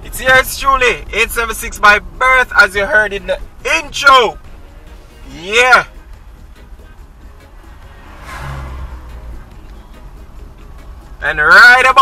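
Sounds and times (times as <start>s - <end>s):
low road rumble: 0.0s - 12.0s
car passing by: 6.8s - 11.2s.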